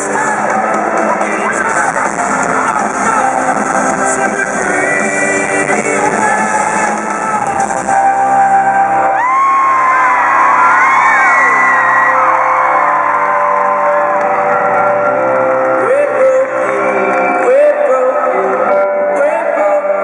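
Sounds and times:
live band music: 0.0 - 20.0
crowd whooping and screaming: 6.4 - 18.0.

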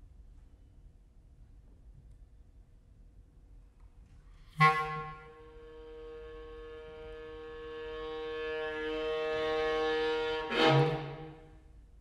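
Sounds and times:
clarinet and viola held note: 4.6 - 11.4.

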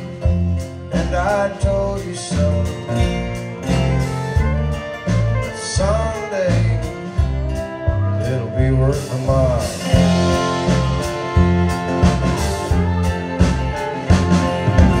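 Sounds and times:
electric guitar: 0.0 - 15.0
fiddle melody: 0.0 - 15.0
low beat: 0.0 - 15.0
strummed acoustic guitar: 0.0 - 15.0.

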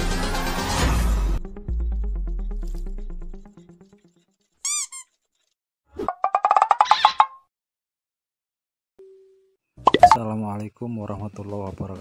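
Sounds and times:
chirp and pop: 9.9 - 10.2.

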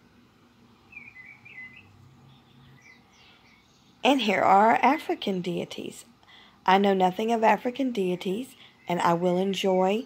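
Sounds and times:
faint bird chirps: 0.8 - 4.1.

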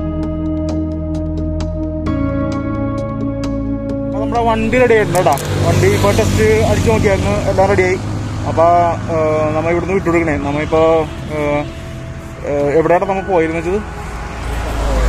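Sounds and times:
man talking: 4.2 - 11.7, 12.4 - 13.9.

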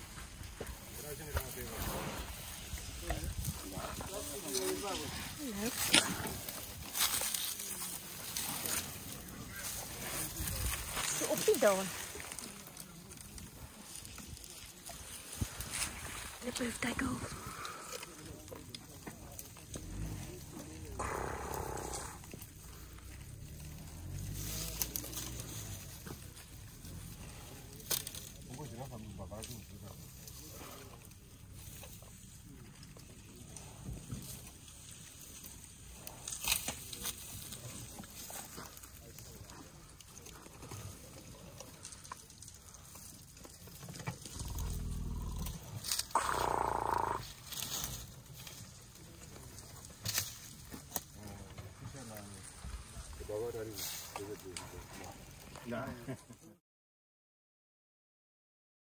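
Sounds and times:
elephants rumbling: 0.0 - 56.1
elephant high-pitched call: 21.0 - 22.2, 46.1 - 47.2.

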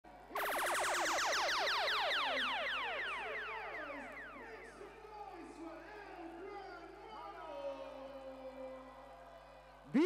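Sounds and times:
electronic zap with falling pitch: 0.3 - 4.5.

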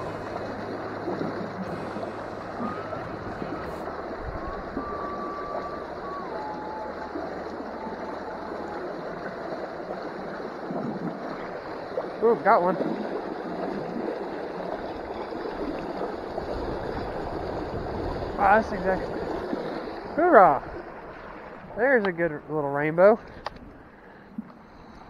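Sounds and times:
stream water rushing over stone: 0.0 - 23.5.

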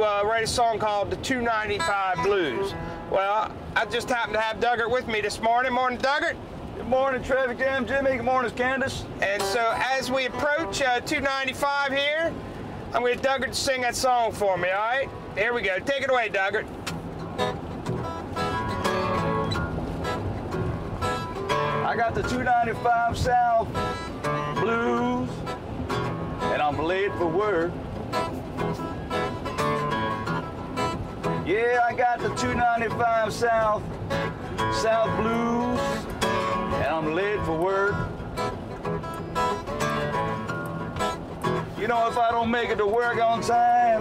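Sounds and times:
acoustic guitar blues: 0.0 - 44.0
car road rumble: 0.0 - 44.0
person singing: 24.3 - 25.3, 34.7 - 36.0.

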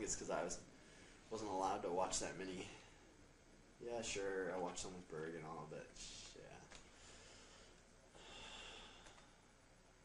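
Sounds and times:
man breathing through nose: 6.9 - 9.3.

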